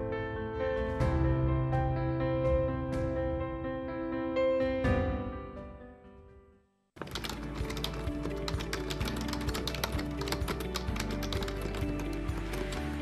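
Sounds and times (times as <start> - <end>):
computer keyboard typing: 7.0 - 13.0.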